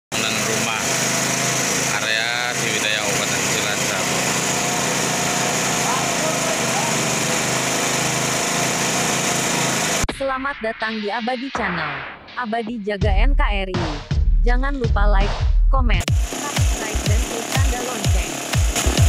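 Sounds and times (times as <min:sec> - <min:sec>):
drilling rig engine running: 0:00.1 - 0:10.1, 0:16.0 - 0:19.0
man calling out: 0:05.7 - 0:07.2.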